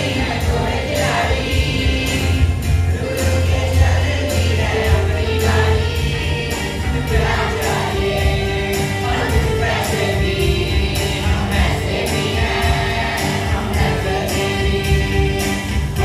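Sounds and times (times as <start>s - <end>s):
accompaniment with steady beat: 0.0s - 16.0s
children's choir singing in unison: 0.0s - 16.0s.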